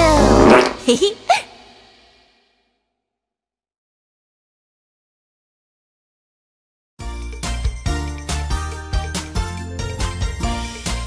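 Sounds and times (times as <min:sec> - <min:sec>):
cartoon fart sound effect: 0:00.0 - 0:01.2.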